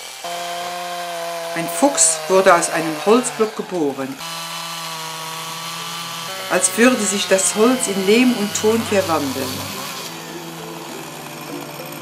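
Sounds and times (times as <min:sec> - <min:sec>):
chainsaw cutting wood: 0:00.0 - 0:12.0.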